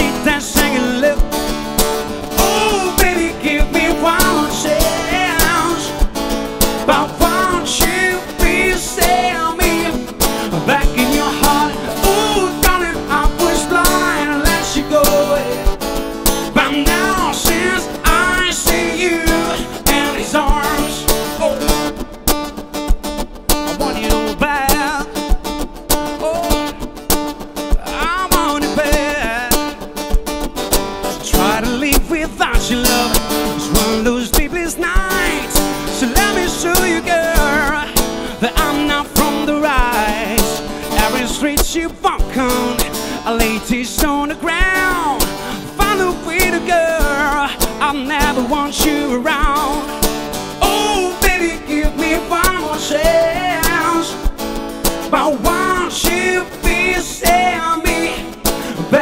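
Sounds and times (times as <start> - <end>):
man singing: 0.0 - 1.5, 2.3 - 22.0, 23.7 - 25.5, 26.1 - 26.9, 27.7 - 29.8, 31.2 - 54.4, 55.0 - 59.0
acoustic guitar strumming: 0.0 - 59.0.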